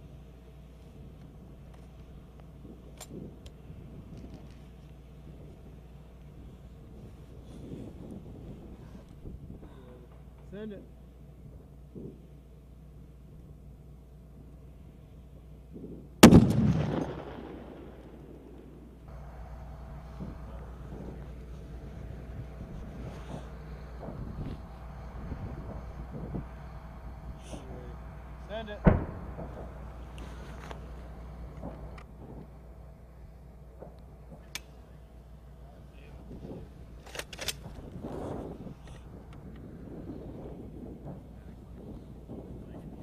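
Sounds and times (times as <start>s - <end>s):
sniper rifle shot echoing: 16.2s - 19.1s, 28.8s - 30.2s.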